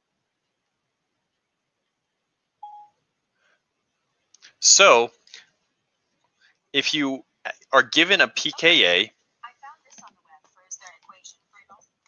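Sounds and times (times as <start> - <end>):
short electronic beep: 2.6 - 3.0.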